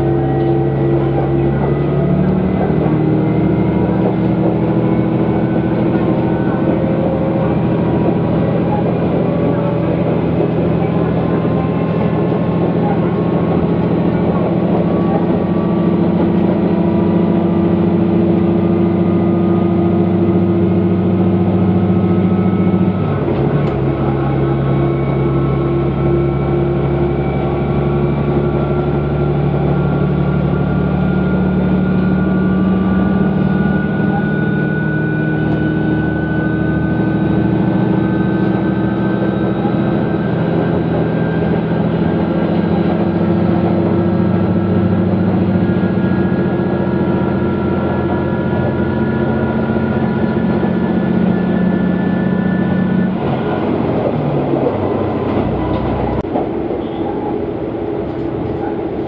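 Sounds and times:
diesel railcar engine drone: 0:00.0 - 0:59.0.

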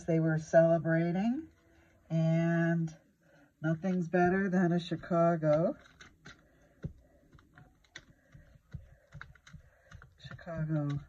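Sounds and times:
paper page taps and clicks: 0:03.8 - 0:11.0.

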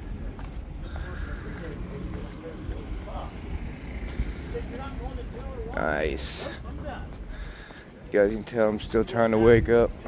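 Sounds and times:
faint background voices talking: 0:00.0 - 0:10.0.

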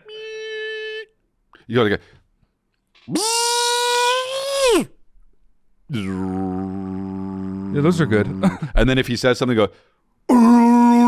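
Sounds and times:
man imitating humming whine: 0:05.9 - 0:08.8, 0:10.3 - 0:11.0.

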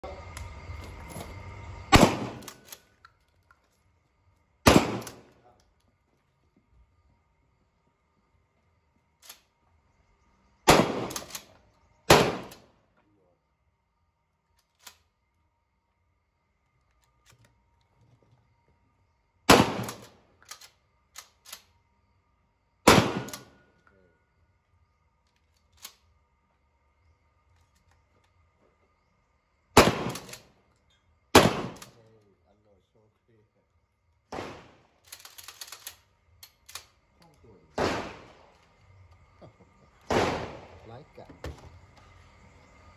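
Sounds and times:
shotgun shot: 0:01.9 - 0:02.7, 0:04.6 - 0:05.3, 0:10.6 - 0:11.5, 0:12.1 - 0:12.7, 0:19.5 - 0:20.2, 0:22.9 - 0:23.6, 0:29.8 - 0:30.4, 0:31.4 - 0:32.0, 0:34.3 - 0:34.9, 0:37.7 - 0:38.5, 0:40.1 - 0:40.9.

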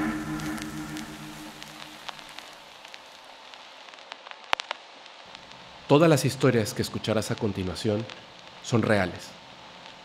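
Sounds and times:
intro music held tones: 0:00.0 - 0:02.4
soft hiss: 0:00.0 - 0:10.0.

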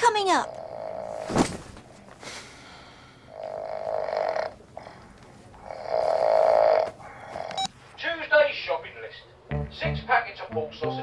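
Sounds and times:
person snoring: 0:00.5 - 0:01.3, 0:03.2 - 0:05.0, 0:05.6 - 0:07.6.

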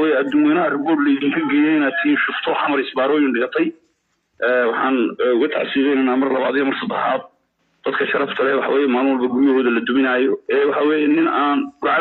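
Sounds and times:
person talking: 0:00.0 - 0:03.8, 0:04.4 - 0:12.0.

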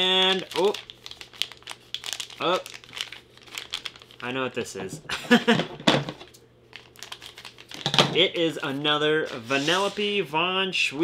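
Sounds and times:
plastic wrapper crinkling: 0:00.0 - 0:04.9, 0:06.2 - 0:09.4.

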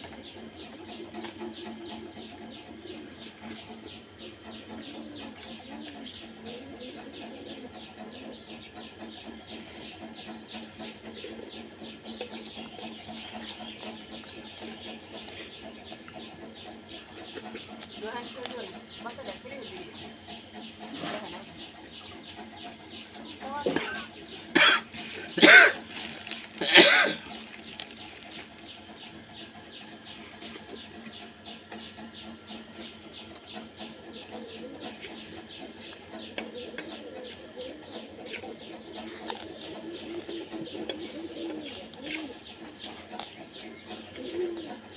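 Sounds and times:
faint bird calls: 0:00.0 - 0:44.9
person coughing: 0:24.5 - 0:25.8, 0:26.6 - 0:27.2.

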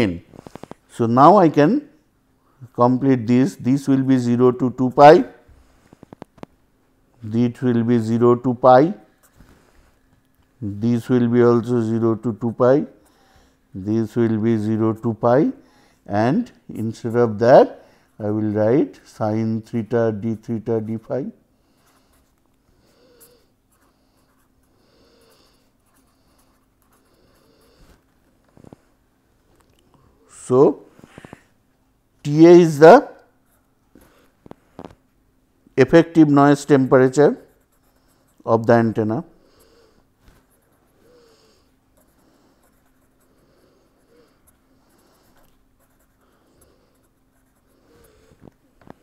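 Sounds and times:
pen scratching on paper: 0:25.3 - 0:28.0, 0:42.0 - 0:48.3.

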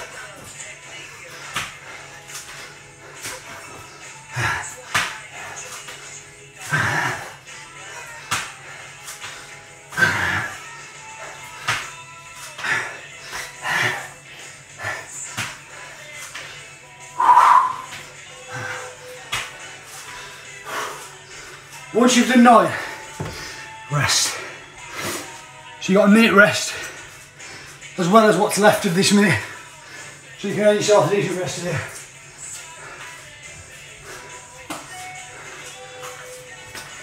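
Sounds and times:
background music: 0:00.0 - 0:37.0
man grunting breaths: 0:01.2 - 0:05.8, 0:06.6 - 0:11.8, 0:12.6 - 0:16.0
hands and feet slapping tiles: 0:01.4 - 0:03.6, 0:04.7 - 0:07.0, 0:08.2 - 0:10.2, 0:11.2 - 0:12.8, 0:15.3 - 0:16.5, 0:19.2 - 0:20.2, 0:23.2 - 0:23.4, 0:34.6 - 0:37.0.

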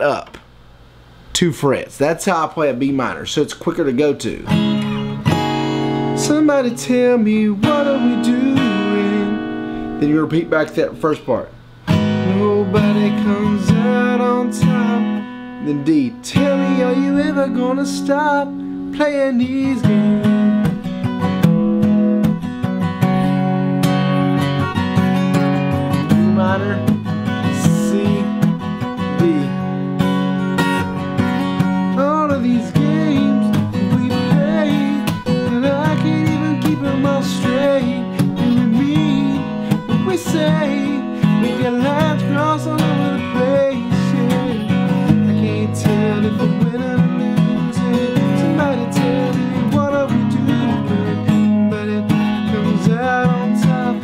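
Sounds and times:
acoustic guitar strumming: 0:02.6 - 0:54.0
man singing: 0:06.2 - 0:10.7, 0:12.0 - 0:20.6, 0:25.9 - 0:29.7, 0:31.8 - 0:54.0.

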